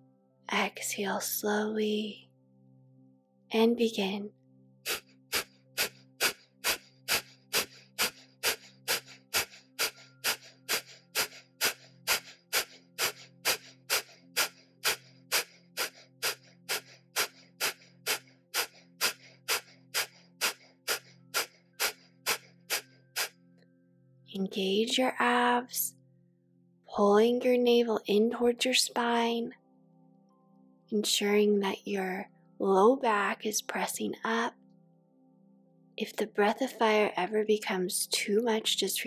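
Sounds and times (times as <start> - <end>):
soft background music: 0.0 - 39.0
rapid forceful nasal exhalations: 4.8 - 23.4.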